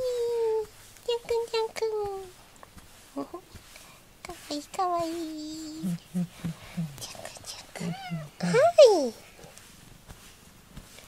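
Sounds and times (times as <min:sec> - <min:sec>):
person chuckling: 0:05.8 - 0:07.0
cat meowing: 0:07.8 - 0:08.5.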